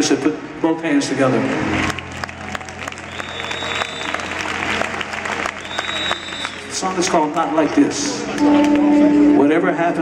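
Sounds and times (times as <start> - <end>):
audience applauding: 1.7 - 8.9.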